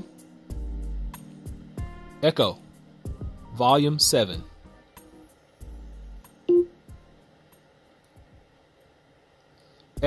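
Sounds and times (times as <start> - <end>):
smart speaker beep: 6.5 - 6.8.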